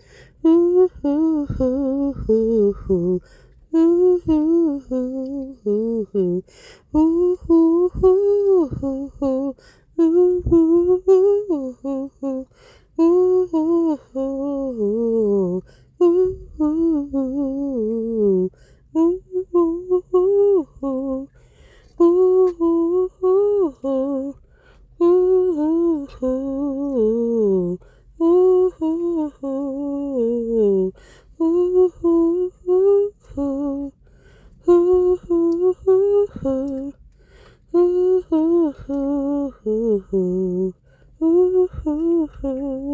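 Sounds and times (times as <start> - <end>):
woman humming: 0.0 - 21.3, 22.0 - 24.4, 25.0 - 34.0, 34.6 - 37.0, 37.7 - 42.9.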